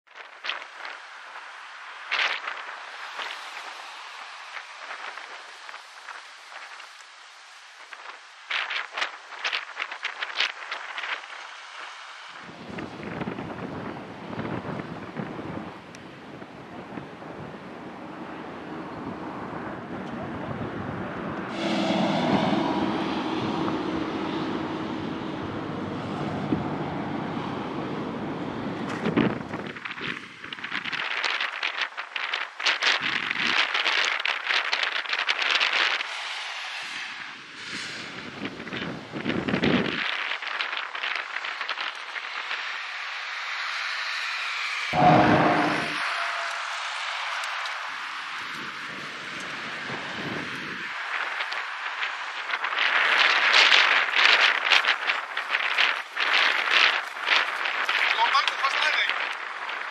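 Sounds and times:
wind buffeting microphone: 0.1s - 36.2s, 37.0s - 42.8s, 44.9s - 59.9s
road traffic passing: 0.2s - 10.2s, 10.8s - 30.5s, 35.8s - 39.6s, 41.4s - 59.6s.

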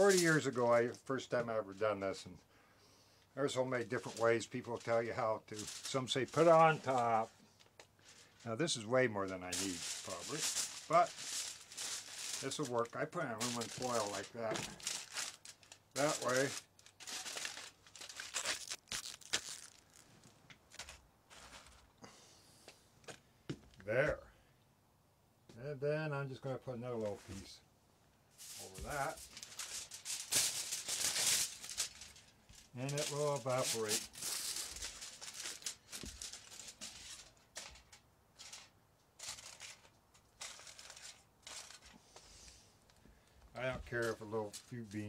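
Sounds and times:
aluminium foil crinkling: 0.0s - 1.1s, 3.5s - 22.0s, 28.4s - 42.2s.

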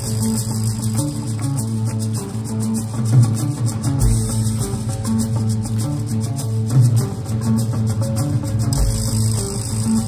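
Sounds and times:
bass guitar line: 0.0s - 10.0s
electric guitar: 0.0s - 10.0s
rapid high percussion ticks: 0.0s - 10.0s.

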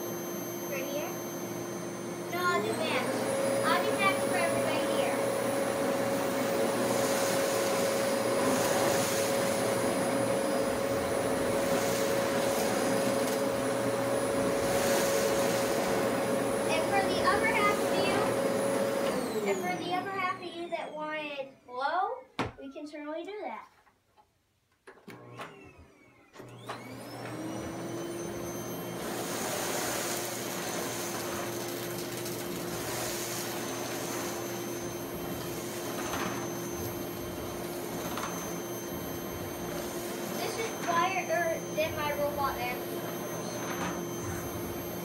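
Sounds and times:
vacuum cleaner running: 0.0s - 21.6s, 25.0s - 45.0s.

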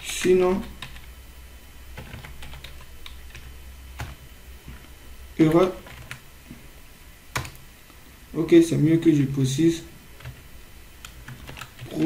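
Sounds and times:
computer keyboard typing: 0.0s - 1.1s, 2.0s - 6.2s, 7.3s - 7.6s, 10.2s - 12.0s
steady low hum: 0.0s - 12.0s.

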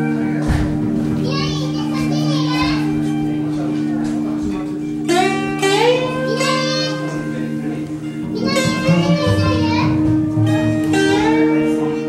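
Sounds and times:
high wavering sliding notes: 0.0s - 12.0s.

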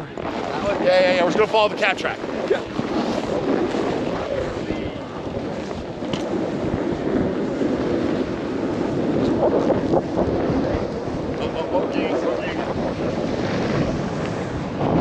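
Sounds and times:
snowboard scraping over snow: 0.0s - 15.0s
wind rushing over microphone: 0.0s - 15.0s.

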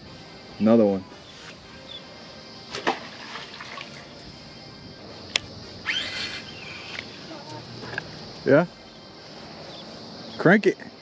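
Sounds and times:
water splashing and dripping: 2.7s - 4.2s.

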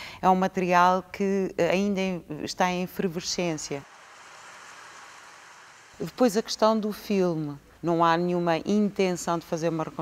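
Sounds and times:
faint rain hiss: 2.7s - 10.0s.

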